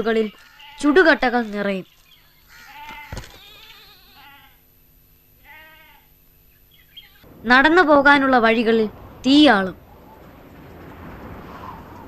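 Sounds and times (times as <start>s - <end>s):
livestock bleating: 0.3s - 1.1s, 2.3s - 4.6s, 5.4s - 6.2s, 6.8s - 7.3s.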